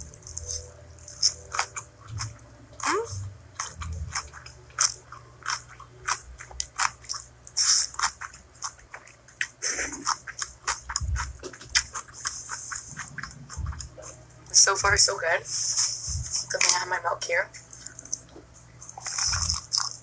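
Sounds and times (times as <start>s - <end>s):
crunchy biting clicks: 17.8s - 20.0s.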